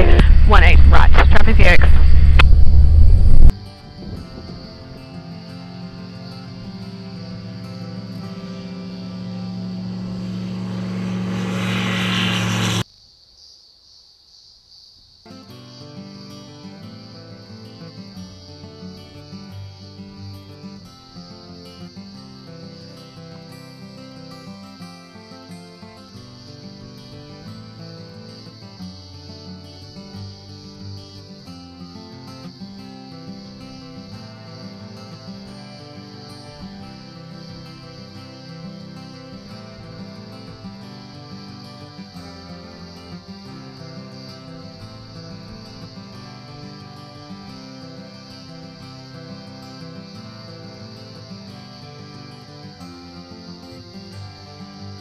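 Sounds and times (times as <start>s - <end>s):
acoustic guitar music: 0.0s - 12.8s, 15.3s - 55.0s
light aircraft engine droning: 0.0s - 12.8s.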